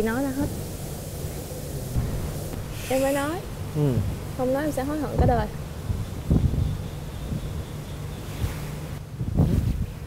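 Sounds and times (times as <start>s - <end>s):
wind buffeting microphone: 1.4s - 10.0s.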